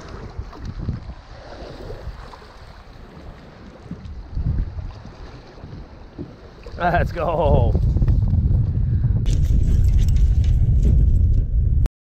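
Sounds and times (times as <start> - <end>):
wind rumble on microphone: 0.0 - 11.9.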